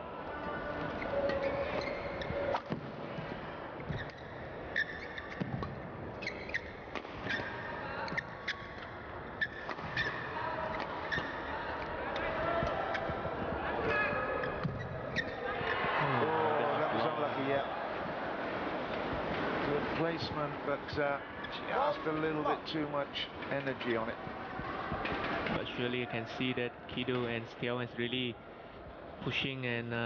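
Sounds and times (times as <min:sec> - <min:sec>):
murmur of indoor crowd: 0:00.0 - 0:30.0
shoes squeaking on court floor: 0:00.4 - 0:15.9.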